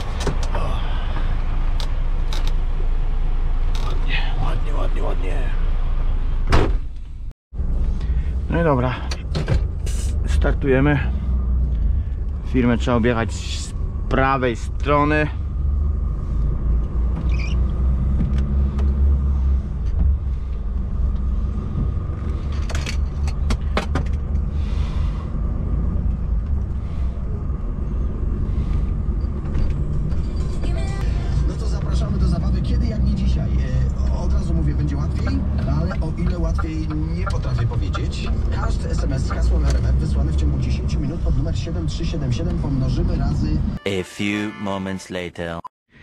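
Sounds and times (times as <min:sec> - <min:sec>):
diesel truck engine rumble: 0:00.0 - 0:43.8.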